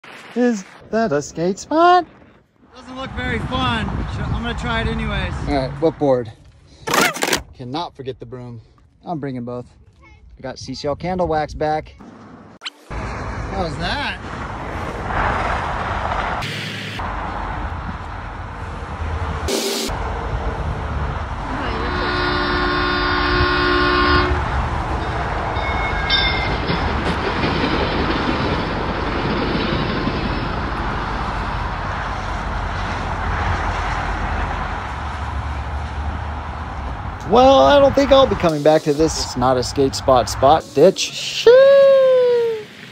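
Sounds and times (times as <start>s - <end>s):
freeway traffic rushing: 0.0s - 10.0s, 11.8s - 42.9s
long multi-tone horn blast: 19.5s - 20.0s, 21.4s - 24.6s.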